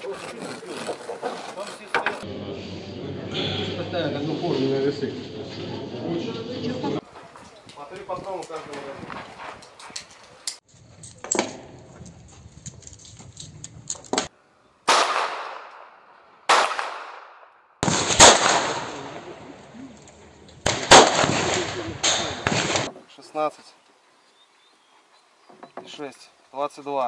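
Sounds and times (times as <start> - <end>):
pistol shots echoing: 14.9 - 15.9, 16.5 - 19.7, 20.6 - 22.9.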